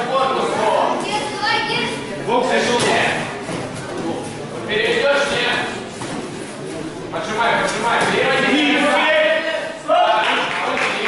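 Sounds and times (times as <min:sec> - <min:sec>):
voices calling out in echoing hall: 0:06.6 - 0:11.0.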